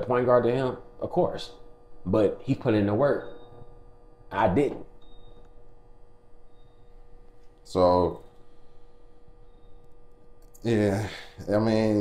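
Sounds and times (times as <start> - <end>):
low steady hum: 0.0 - 12.0
thin constant tone: 0.0 - 12.0.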